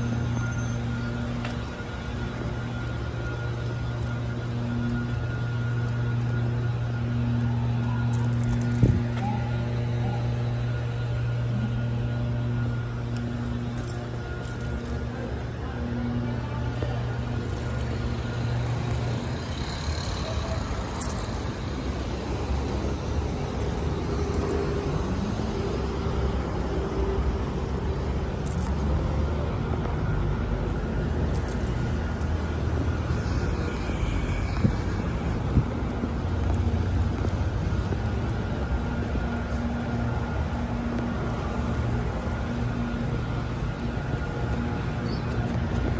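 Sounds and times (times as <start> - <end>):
cars passing and idling: 0.0 - 45.9.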